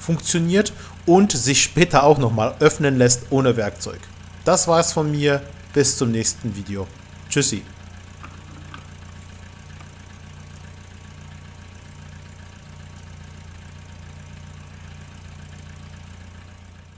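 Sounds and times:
van engine idling: 0.0 - 16.9.

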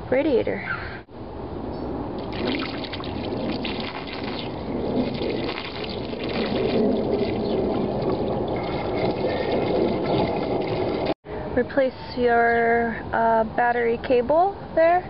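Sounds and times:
coolant pouring through a funnel: 2.2 - 11.2.

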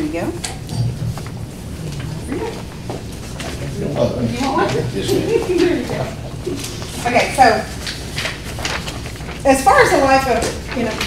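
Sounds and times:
low murmured voices: 0.0 - 8.8.

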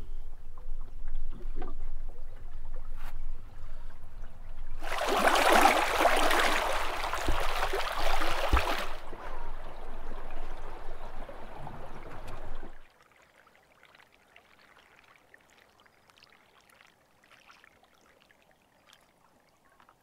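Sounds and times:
water rushing along hull: 4.7 - 19.2.

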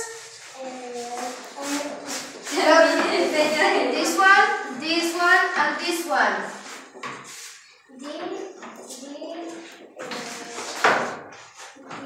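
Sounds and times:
children talking and calling out: 0.0 - 3.8, 7.6 - 12.0.

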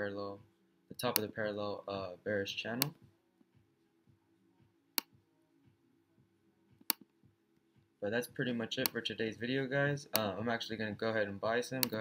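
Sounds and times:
faint low laptop hum: 0.0 - 12.0
mouse clicks: 8.8 - 9.0, 11.8 - 12.0.

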